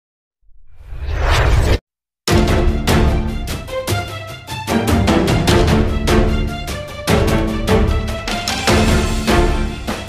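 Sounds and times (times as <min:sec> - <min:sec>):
whoosh sound effect: 0:00.6 - 0:01.8.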